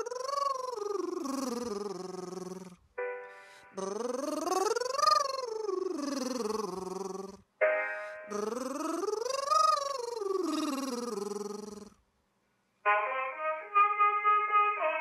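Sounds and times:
piano chord: 3.0s - 3.6s, 7.6s - 8.3s
man singing vocal scale: 8.3s - 11.7s.

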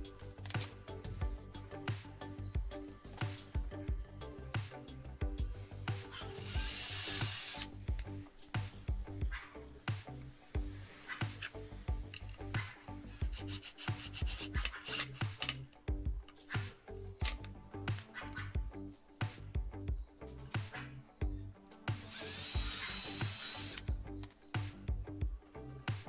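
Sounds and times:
background music: 0.0s - 26.0s
cordless drill boring into wood: 6.3s - 7.7s, 22.1s - 23.9s.

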